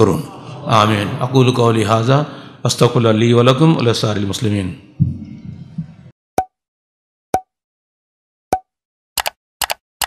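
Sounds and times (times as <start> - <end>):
sharp double clicks: 9.2 - 9.8.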